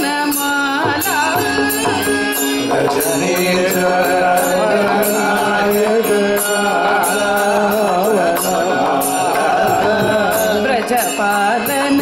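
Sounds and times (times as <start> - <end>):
devotional singing: 0.0 - 12.0.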